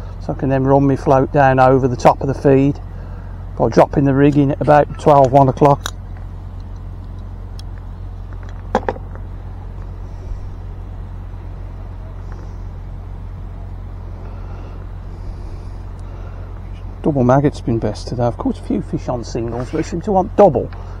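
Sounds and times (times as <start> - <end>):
steady low rumble: 0.0 - 21.0.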